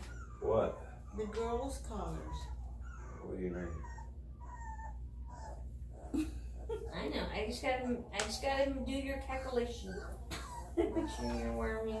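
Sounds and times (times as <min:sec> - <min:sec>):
puppy whining: 0:00.0 - 0:12.0.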